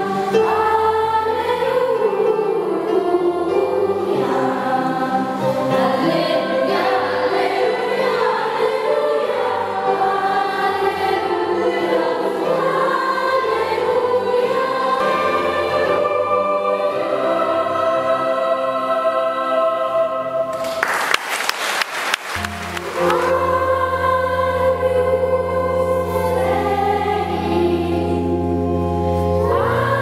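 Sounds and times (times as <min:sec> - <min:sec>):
children's choir singing: 0:00.0 - 0:30.0.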